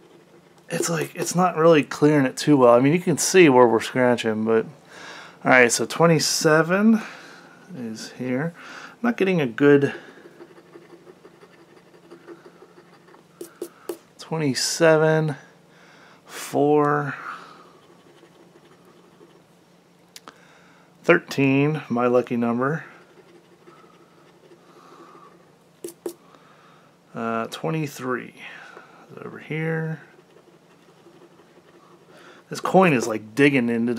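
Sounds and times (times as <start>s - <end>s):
coin scratching lottery ticket: 10.1s - 13.8s, 17.8s - 19.4s, 22.9s - 25.2s, 29.9s - 32.2s
coin scratching ticket: 10.4s - 13.9s, 25.8s - 26.2s.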